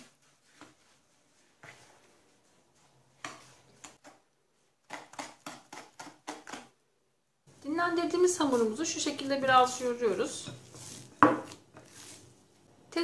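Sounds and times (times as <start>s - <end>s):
metal spoon scraping plastic bowl: 8.5s - 12.3s.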